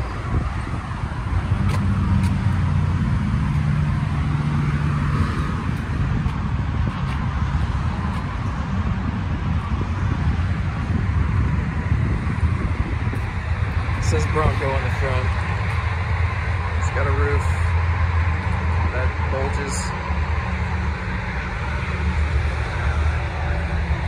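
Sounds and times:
engine hum: 0.0s - 24.0s
low vehicle rumble: 0.0s - 24.0s.

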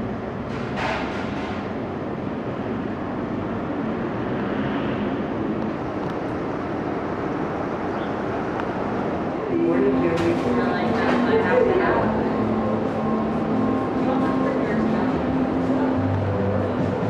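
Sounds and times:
traffic rumble: 0.0s - 17.0s.

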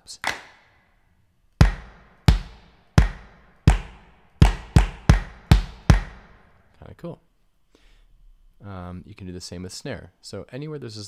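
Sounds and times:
kick drum layered with hand-clap: 1.6s - 6.4s.

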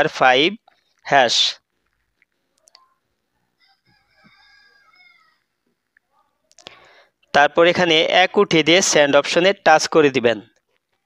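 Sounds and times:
faint clicks: 1.8s - 3.0s.

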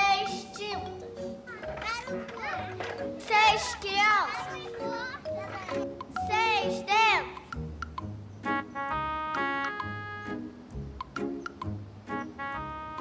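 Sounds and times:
children calling out: 0.0s - 7.5s
light background music: 0.0s - 13.0s.

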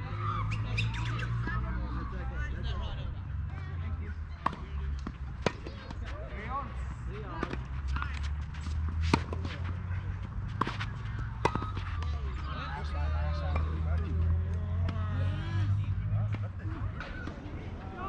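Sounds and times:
tennis rackets striking ball: 4.4s - 6.0s, 7.3s - 12.1s.

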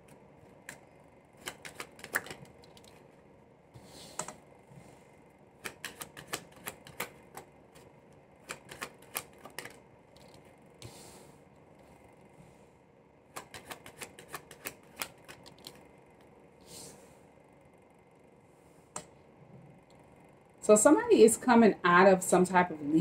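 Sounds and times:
cards being shuffled: 1.4s - 3.0s, 5.6s - 10.5s, 13.4s - 15.9s.

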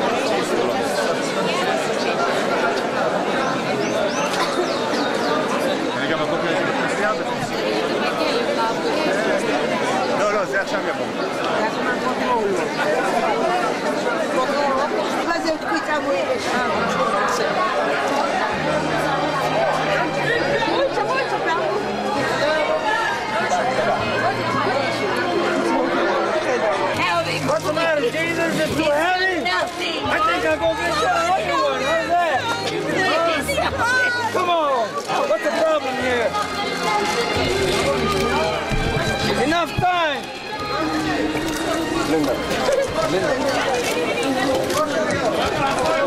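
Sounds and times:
crowd chatter: 0.0s - 46.0s.

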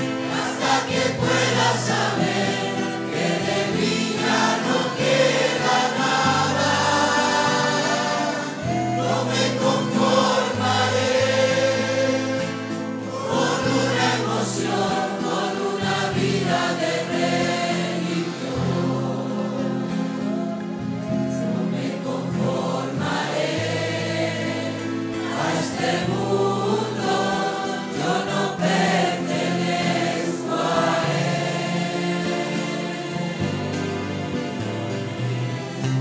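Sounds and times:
congregation singing: 0.0s - 36.0s
instrumental accompaniment: 0.0s - 36.0s.

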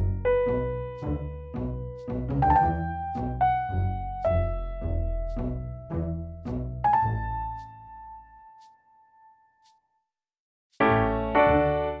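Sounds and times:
keyboard chords: 10.8s - 12.0s.

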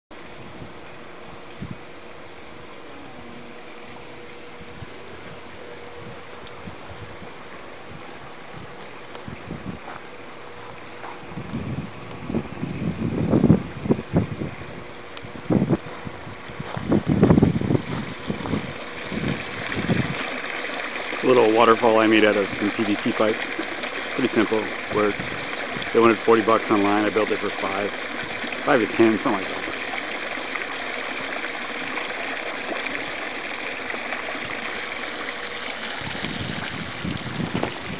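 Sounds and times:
wind buffeting microphone: 4.5s - 10.0s, 11.2s - 20.4s, 23.8s - 26.8s, 35.9s - 37.9s
water running into pool: 15.4s - 37.9s.

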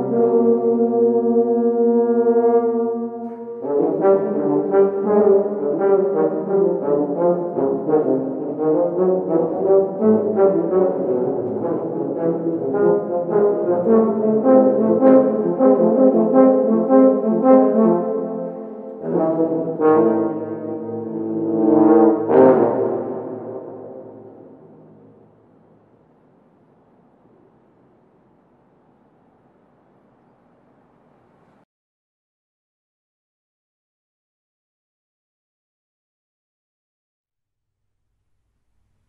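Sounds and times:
wind ensemble chamber music: 0.0s - 25.2s.

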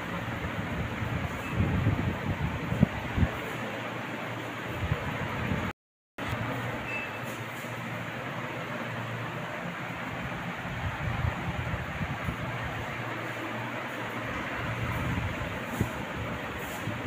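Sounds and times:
steady rushing noise: 7.9s - 17.0s.

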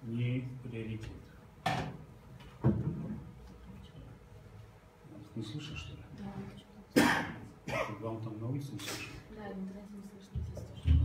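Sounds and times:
person coughing: 7.0s - 8.1s.

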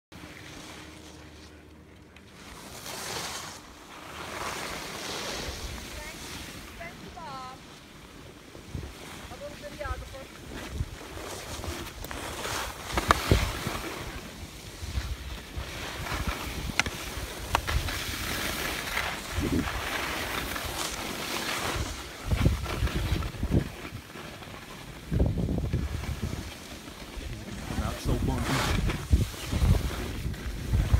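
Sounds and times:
skis scraping on snow: 0.2s - 1.6s, 2.2s - 30.9s
wind buffeting microphone: 19.2s - 20.0s, 22.2s - 24.0s, 25.0s - 26.5s, 27.2s - 30.9s.

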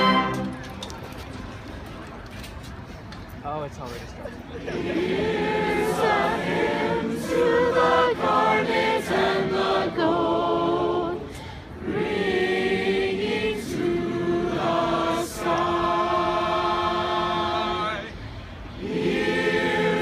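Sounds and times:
group singing a hymn a cappella: 4.6s - 20.0s.

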